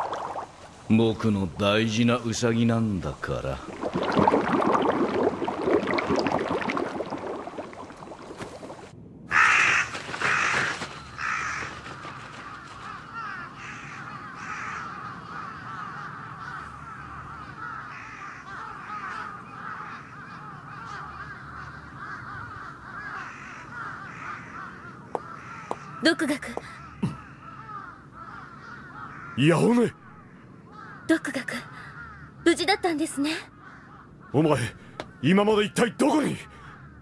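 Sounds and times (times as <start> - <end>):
crows cawing: 9.3 - 37.0.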